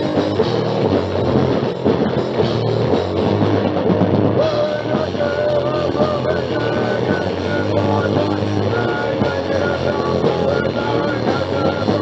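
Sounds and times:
thrash punk song: 0:00.0 - 0:12.0.

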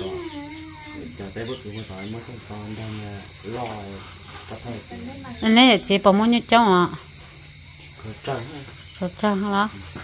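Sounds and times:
voices talking: 0:00.0 - 0:07.1, 0:07.9 - 0:10.0
high-pitched insect drone: 0:00.0 - 0:10.0.

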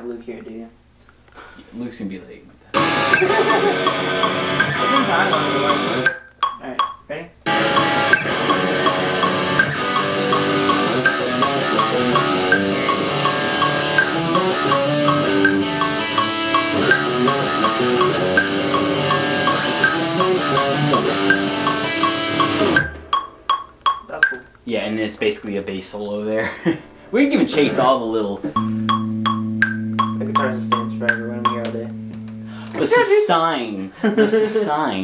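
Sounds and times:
electric guitar: 0:02.7 - 0:06.1, 0:07.5 - 0:23.1, 0:28.6 - 0:33.2
rock band backing track: 0:02.8 - 0:06.2, 0:07.5 - 0:23.8, 0:28.6 - 0:32.8.

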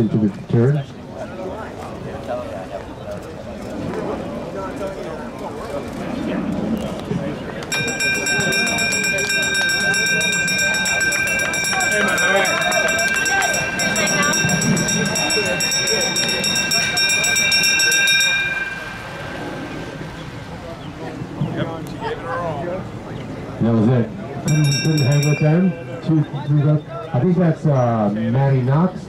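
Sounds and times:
people talking: 0:00.0 - 0:29.0
hand bell ringing rapidly: 0:07.7 - 0:20.0, 0:24.5 - 0:26.0.

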